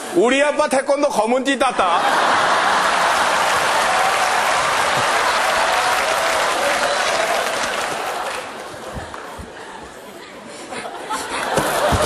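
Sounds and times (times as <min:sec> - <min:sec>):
audience clapping: 0:02.4 - 0:09.6.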